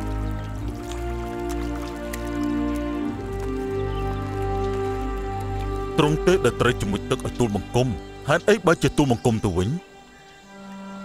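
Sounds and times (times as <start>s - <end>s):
faint trickling water: 0.0s - 11.0s
soft sustained chords music: 0.0s - 11.0s.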